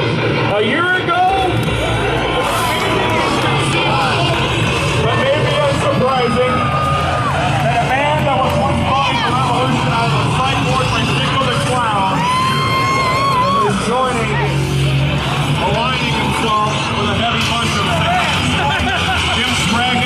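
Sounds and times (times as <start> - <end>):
entrance music over loudspeakers: 0.0 - 20.0
people calling out and chattering: 0.0 - 20.0.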